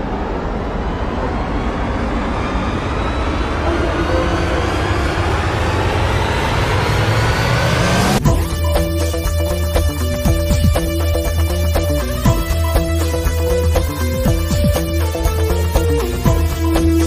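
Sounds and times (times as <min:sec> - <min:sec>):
dramatic rushing soundtrack: 0:00.0 - 0:17.0.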